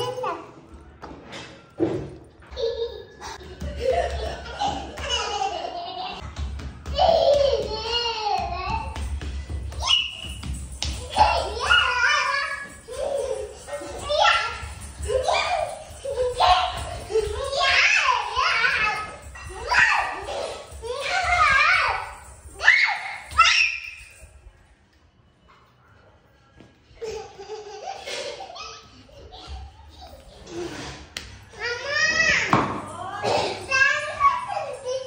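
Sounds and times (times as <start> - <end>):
young children's voices: 31.6 - 35.0.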